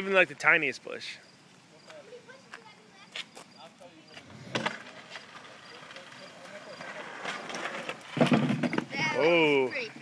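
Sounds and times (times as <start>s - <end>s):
skateboard wheels rolling on pavement: 0.0s - 10.0s
sharp skateboard clack: 4.2s - 9.1s.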